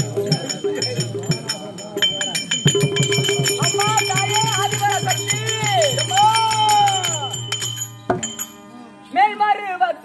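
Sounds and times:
drum beating steady rhythm: 0.0s - 8.7s
small metal cymbals clinking: 0.0s - 8.8s.

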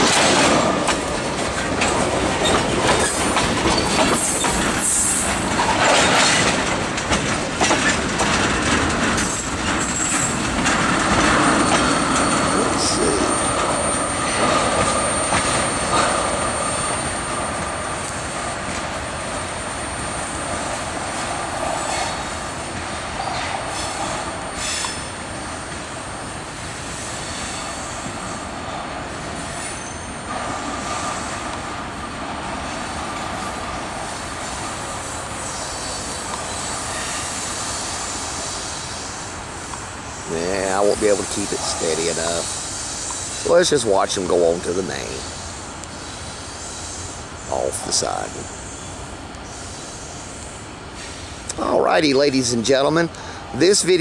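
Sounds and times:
train wheels clicking over rail joints: 0.0s - 54.0s
thin wheel squeal: 29.5s - 30.2s.

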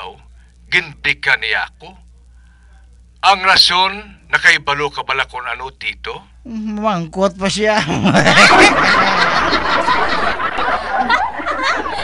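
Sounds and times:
loud laughter: 7.8s - 12.0s.

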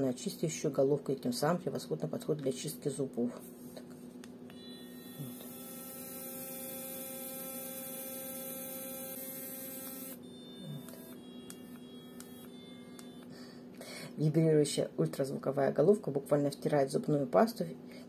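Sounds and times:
electric toothbrush buzzing: 4.5s - 13.4s.

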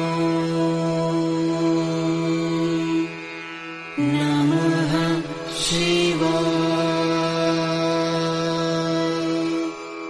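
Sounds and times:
mantra chanting: 0.0s - 3.2s, 4.0s - 9.8s.

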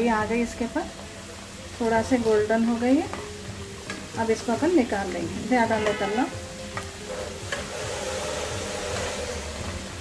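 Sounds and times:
oil sizzling in a wok: 0.0s - 10.0s.

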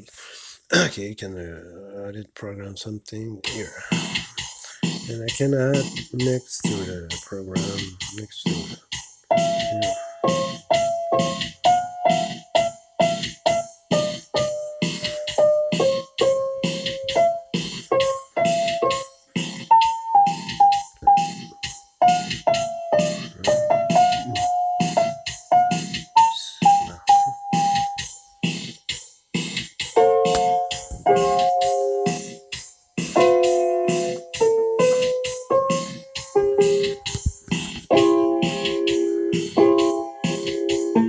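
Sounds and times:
keyboard drum rhythm: 2.8s - 41.0s
electronic keyboard melody: 4.8s - 41.0s.

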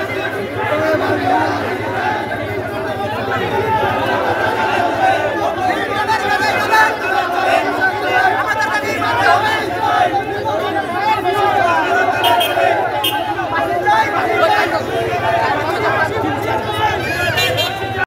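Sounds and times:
crowd of men shouting: 0.0s - 18.0s.

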